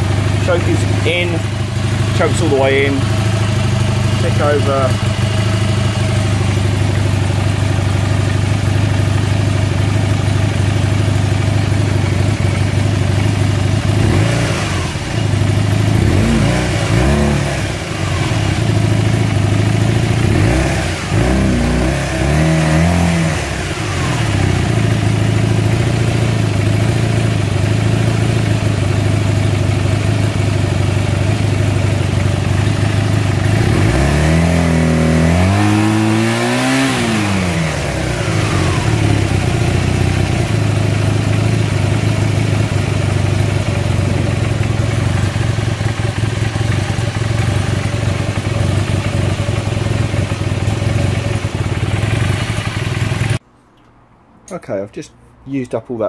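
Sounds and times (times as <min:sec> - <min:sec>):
motorcycle engine idling and revving: 0:00.0 - 0:54.5.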